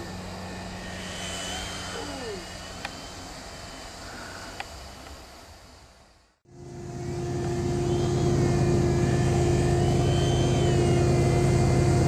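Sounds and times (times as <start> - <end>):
rc helicopter motor whine: 0.0 - 5.8, 6.5 - 12.0.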